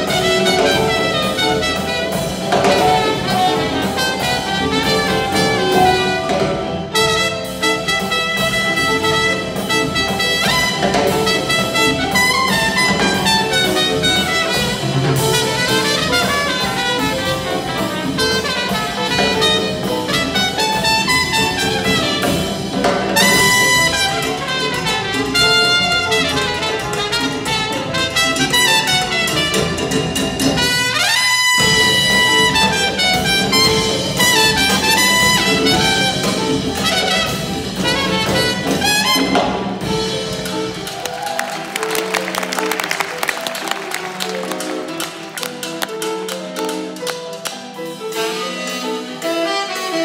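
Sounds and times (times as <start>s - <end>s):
held brass chord: 0.0s - 50.0s
jazz big band playing: 0.0s - 50.0s.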